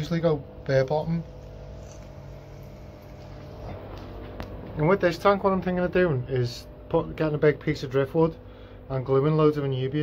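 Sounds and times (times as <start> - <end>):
aquarium pump humming: 0.0 - 10.0.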